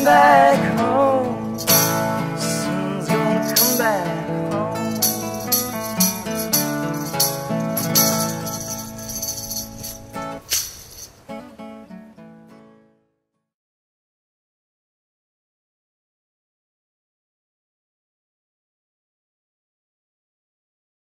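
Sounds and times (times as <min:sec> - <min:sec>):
acoustic guitar strumming: 0:00.0 - 0:13.0
tambourine shaken: 0:01.5 - 0:02.4, 0:03.4 - 0:11.2.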